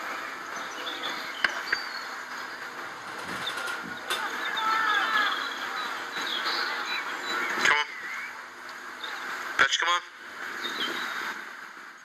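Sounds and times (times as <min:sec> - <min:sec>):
birds calling: 0:00.0 - 0:11.6
steady outdoor hiss: 0:00.0 - 0:12.0.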